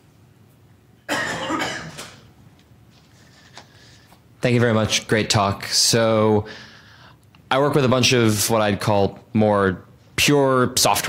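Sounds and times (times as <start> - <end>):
person coughing: 1.1 - 2.2.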